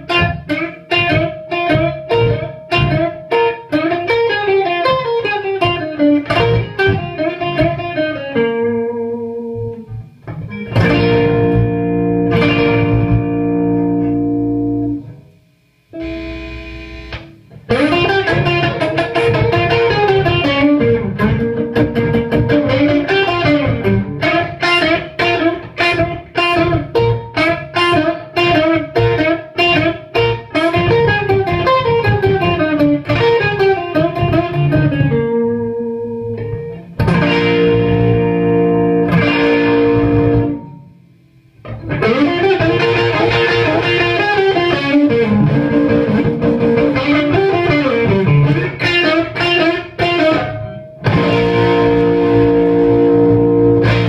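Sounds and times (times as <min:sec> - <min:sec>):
electric guitar playing: 0:00.0 - 0:54.0.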